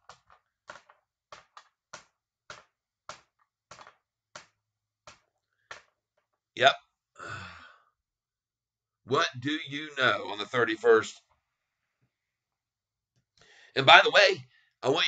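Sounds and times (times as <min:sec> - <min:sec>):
breathy sigh: 0:07.2 - 0:07.9.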